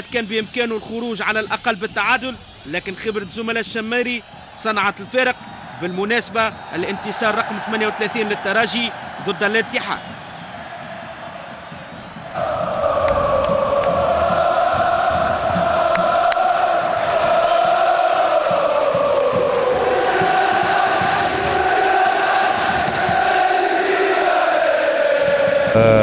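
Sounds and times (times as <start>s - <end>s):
stadium crowd chanting: 0.6s - 26.0s.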